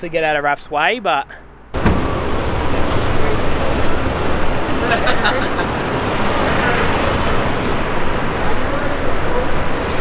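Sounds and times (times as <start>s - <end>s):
road traffic roar: 0.0s - 10.0s
voices: 2.4s - 10.0s.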